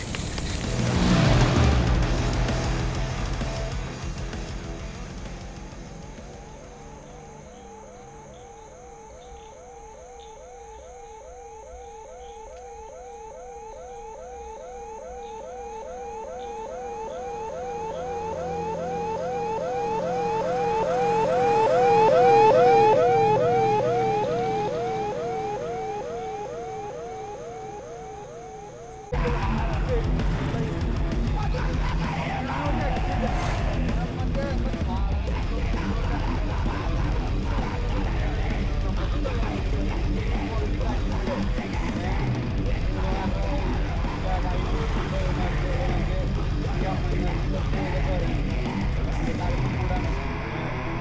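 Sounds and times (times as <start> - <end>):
vehicle siren yelping: 0.0 - 34.3, 35.3 - 51.0
loud music: 0.6 - 9.0, 12.8 - 51.0.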